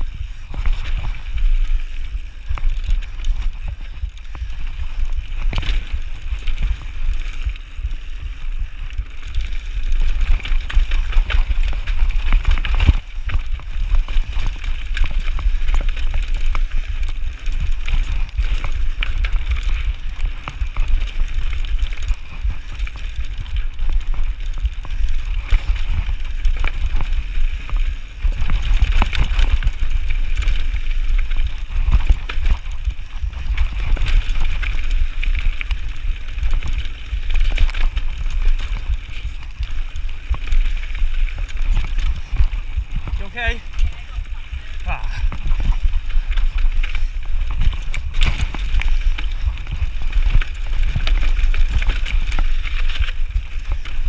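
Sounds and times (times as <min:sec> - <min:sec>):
bike rattling and knocking: 0:00.0 - 0:54.0
tyres crunching over stones: 0:00.0 - 0:54.0
wind rumble on microphone: 0:00.0 - 0:54.0.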